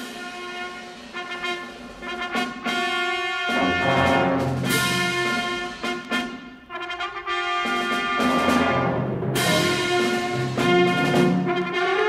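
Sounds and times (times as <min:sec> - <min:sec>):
wind ensemble playing a march: 0:00.0 - 0:12.0.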